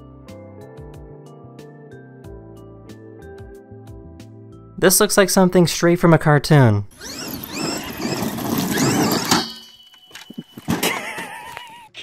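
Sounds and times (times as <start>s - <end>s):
toy truck motor whining: 6.9s - 11.8s.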